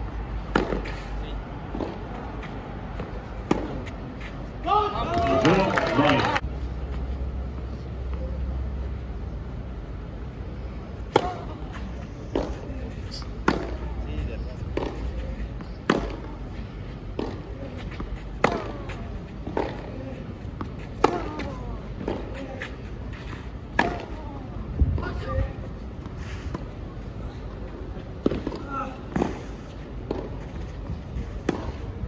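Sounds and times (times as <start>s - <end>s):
racket hitting tennis ball: 0.4s - 1.1s, 1.7s - 4.0s, 11.1s - 12.7s, 13.4s - 13.8s, 14.7s - 15.1s, 15.8s - 16.4s, 17.2s - 19.9s, 20.6s - 24.2s, 31.4s - 31.9s.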